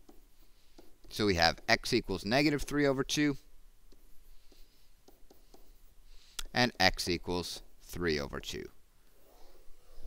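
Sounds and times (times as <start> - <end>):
stylus tapping and scratching: 0.0 - 6.5.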